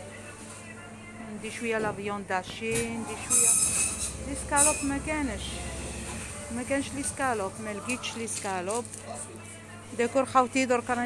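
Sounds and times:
background music: 0:00.0 - 0:11.0
low hum: 0:02.5 - 0:08.2.

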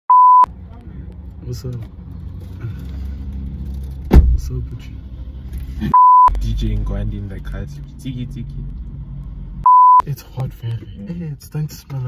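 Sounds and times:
electronic bleep tone: 0:00.1 - 0:00.5, 0:06.0 - 0:06.3, 0:09.7 - 0:10.0
car cabin rumble: 0:04.0 - 0:04.7.

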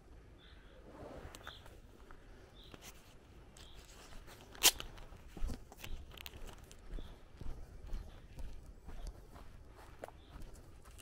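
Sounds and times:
small bird chirping: 0:01.4 - 0:02.9, 0:03.6 - 0:04.0, 0:05.8 - 0:11.0
footsteps on a path: 0:01.6 - 0:11.0.

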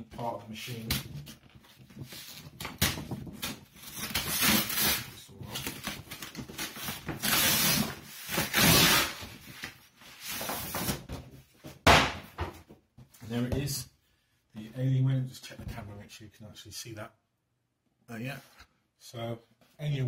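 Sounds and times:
paper and cardboard tearing: 0:02.1 - 0:09.3.

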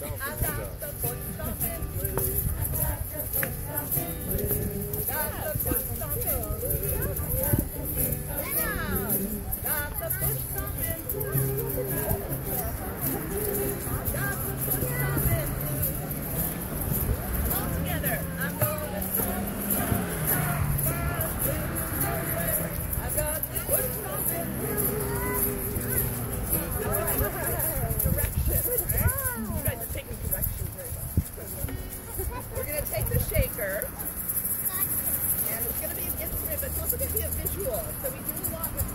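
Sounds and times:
woman singing blues: 0:00.0 - 0:16.2
acoustic guitar: 0:00.0 - 0:38.9
children and adults talking: 0:00.0 - 0:38.9
egg shakers rattling: 0:00.1 - 0:38.9.

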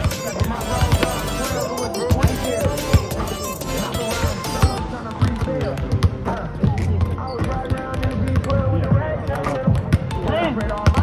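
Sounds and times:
basketballs bouncing on hardwood: 0:00.0 - 0:01.4, 0:02.1 - 0:03.4, 0:04.6 - 0:11.0
background music: 0:00.0 - 0:11.0
people talking: 0:00.0 - 0:11.0.

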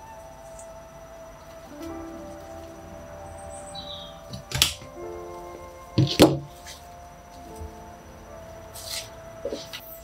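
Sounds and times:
soft background music: 0:00.0 - 0:10.0
branch cutters snapping branch: 0:04.3 - 0:05.0.

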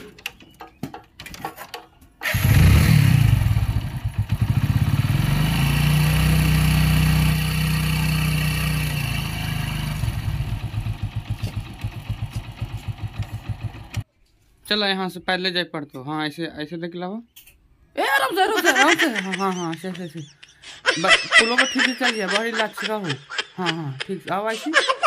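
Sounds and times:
motorcycle engine revving: 0:02.2 - 0:14.0.

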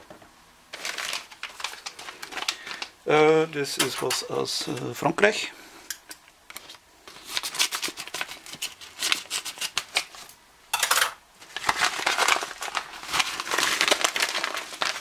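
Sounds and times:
sharp paper rustle: 0:00.7 - 0:02.9, 0:06.6 - 0:10.3, 0:11.4 - 0:15.0
envelope crinkling: 0:00.7 - 0:03.0, 0:06.6 - 0:10.3, 0:11.4 - 0:15.0
paper crackling: 0:00.7 - 0:03.0, 0:06.6 - 0:10.3, 0:11.4 - 0:15.0.

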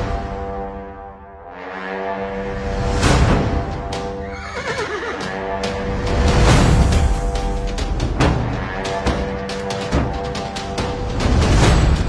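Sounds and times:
dramatic background music: 0:00.0 - 0:12.0
horse whinnying: 0:04.2 - 0:05.5.

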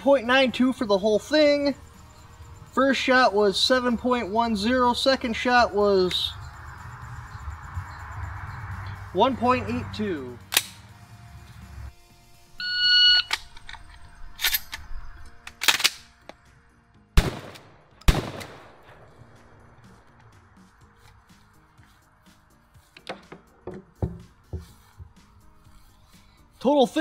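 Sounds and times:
shotgun firing: 0:17.2 - 0:19.0.

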